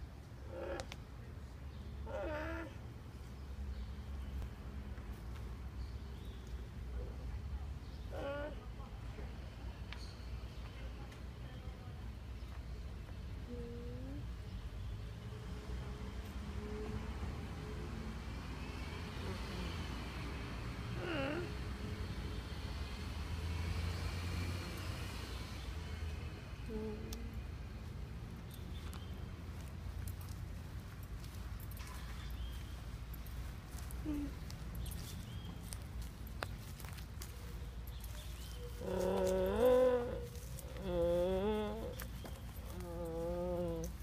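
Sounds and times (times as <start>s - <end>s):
distant traffic rumble: 0.0s - 44.0s.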